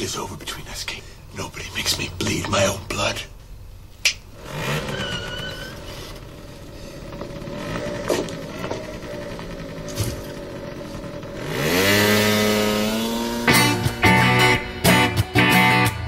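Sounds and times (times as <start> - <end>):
scooter engine running: 1.5 - 3.2, 4.3 - 15.0.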